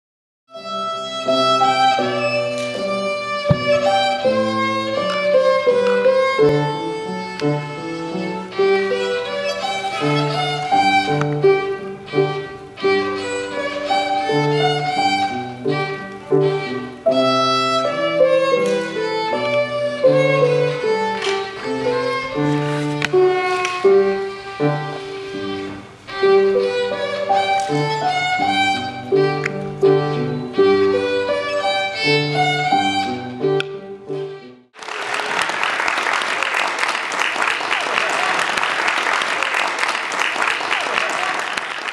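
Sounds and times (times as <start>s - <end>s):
violin melody: 0.5s - 34.8s.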